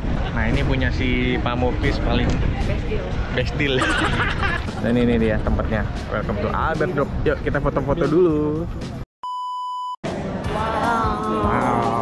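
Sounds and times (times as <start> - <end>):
steady test tone beep: 9.2 - 10.0
music with voices: 10.0 - 12.0.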